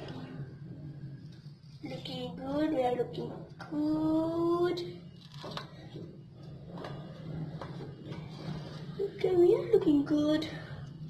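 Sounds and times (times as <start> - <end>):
steady low hum: 0.0 - 11.0
tape peeling crackles: 5.2 - 5.8.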